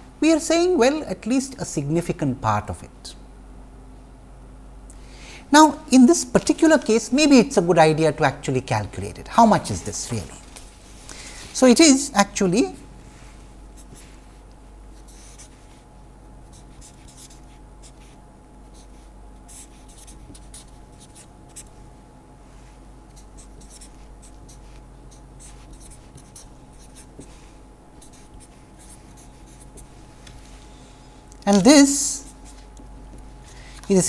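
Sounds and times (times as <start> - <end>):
faint electrical hum: 0.0 - 34.0
marker pen scratching on paper: 13.8 - 15.9, 16.5 - 21.8, 22.6 - 30.7, 32.2 - 32.7.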